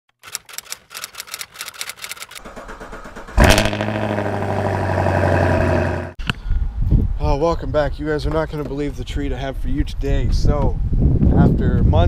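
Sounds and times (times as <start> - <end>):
car engine cranking and starting: 0.2 - 6.1.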